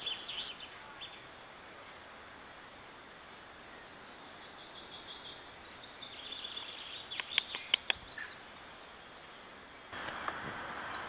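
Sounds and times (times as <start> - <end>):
small birds chirping: 0.0 - 2.3, 2.9 - 11.0
sharp clicks: 7.1 - 8.0.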